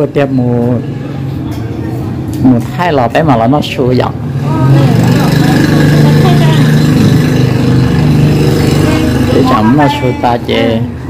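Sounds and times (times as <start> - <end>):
people talking: 4.5 - 6.8, 8.8 - 10.9.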